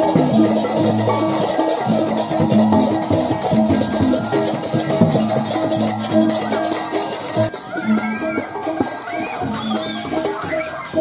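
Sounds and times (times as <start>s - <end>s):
fast percussion strokes: 0.0s - 11.0s
gamelan ringing metal tones: 0.0s - 11.0s.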